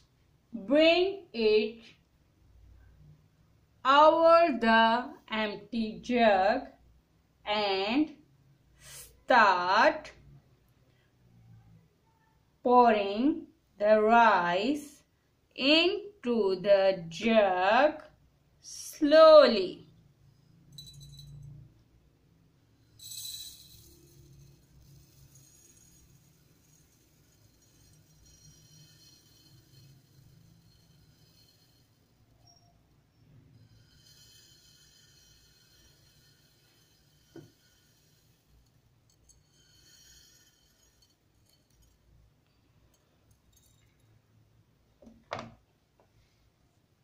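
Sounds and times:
rice trickling into glass jug: 0:22.7 - 0:42.2.

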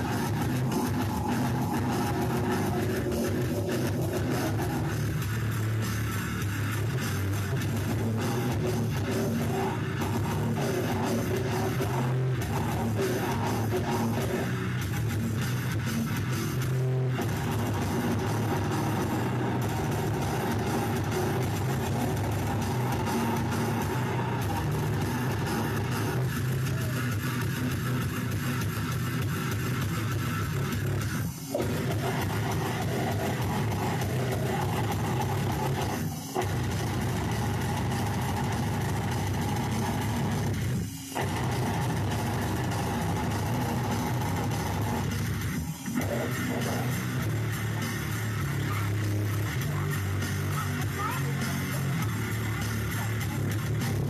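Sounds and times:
distorted electric guitars: 0:00.0 - 0:54.0
drum kit: 0:00.0 - 0:54.0.

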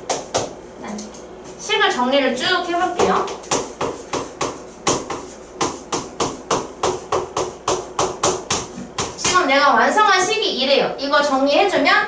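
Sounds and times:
chalk tapping and scraping: 0:02.9 - 0:09.4.

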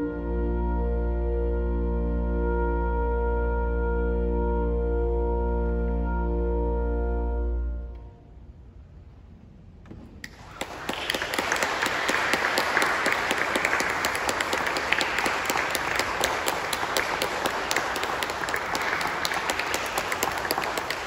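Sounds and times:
audience applauding: 0:10.2 - 0:21.0.

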